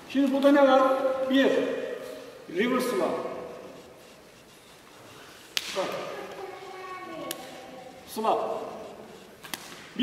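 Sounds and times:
hand slapping forearm: 0:05.6 - 0:06.0.

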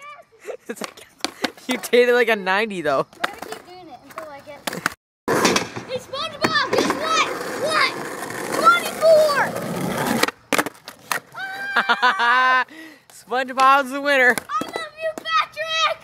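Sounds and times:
skateboard wheels rolling on asphalt: 0:00.7 - 0:02.3, 0:03.0 - 0:12.1, 0:13.1 - 0:16.0.

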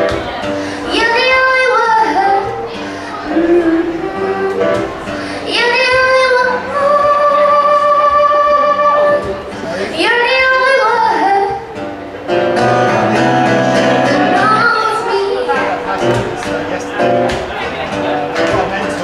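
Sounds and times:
acoustic guitar: 0:00.0 - 0:19.0
woman singing: 0:00.7 - 0:11.8, 0:13.7 - 0:15.8.

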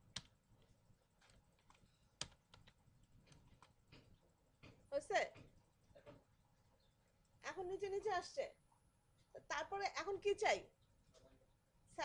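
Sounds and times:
typing on computer keyboard: 0:00.0 - 0:03.8.

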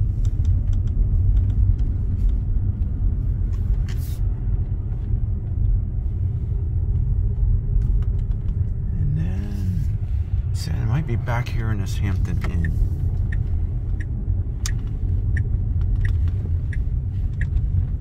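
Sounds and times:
road and tyre rumble in car: 0:00.0 - 0:18.0.

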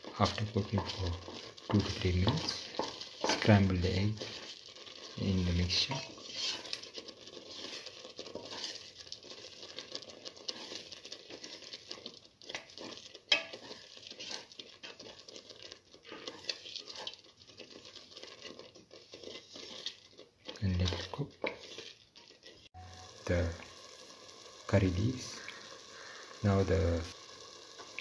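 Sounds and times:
spoon stirring thick stew: 0:00.0 - 0:28.0.

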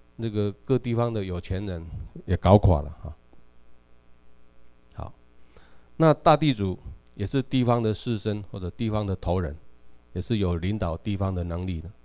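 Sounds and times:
electrical mains hum: 0:00.0 - 0:12.0
man speaking: 0:00.2 - 0:03.2, 0:05.0 - 0:05.2, 0:06.0 - 0:09.6, 0:10.2 - 0:12.0
short breath: 0:05.4 - 0:06.0.

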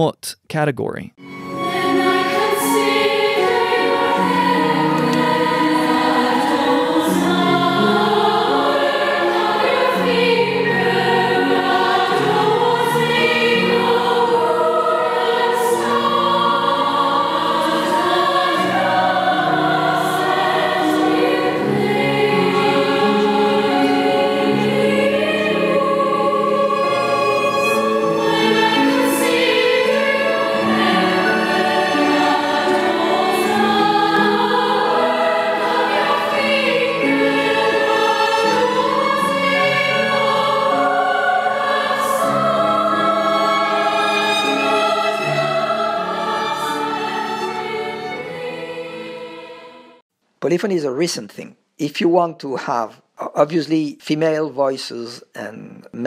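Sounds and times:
girls choir singing in harmony: 0:01.2 - 0:50.0.

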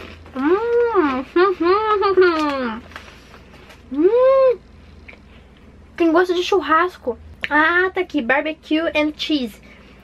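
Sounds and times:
woman humming mmm: 0:03.9 - 0:04.6.

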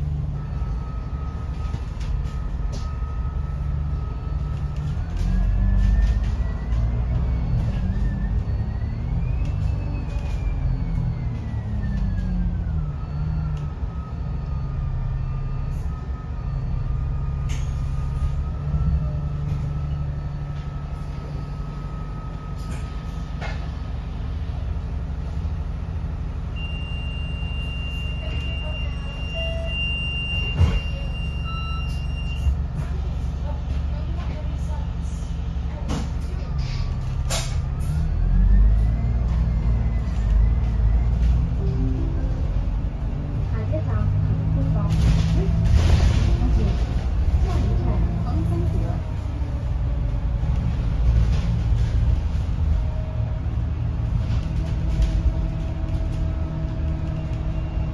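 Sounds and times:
bus engine drone with whine: 0:00.0 - 0:57.9
knocks and rattles from bus body: 0:30.4 - 0:31.1, 0:35.7 - 0:37.7, 0:44.7 - 0:48.9.

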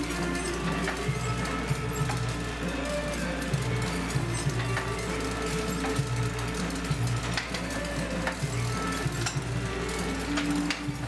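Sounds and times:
printing press mechanical churn: 0:00.0 - 0:11.0
printing press sharp clack: 0:00.0 - 0:11.0.

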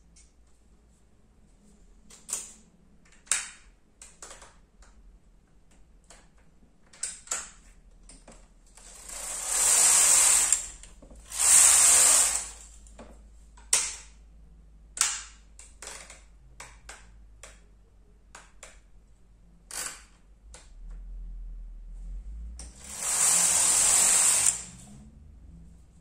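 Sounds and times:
sharp machine clicks: 0:08.8 - 0:12.6, 0:22.8 - 0:24.7
knitting machine carriage sliding: 0:08.8 - 0:12.7, 0:22.7 - 0:25.0.

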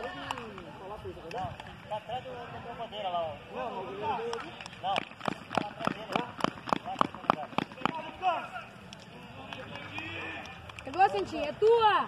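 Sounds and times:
fast sharp claps or steps: 0:00.0 - 0:01.8, 0:04.2 - 0:08.2, 0:08.9 - 0:11.5.

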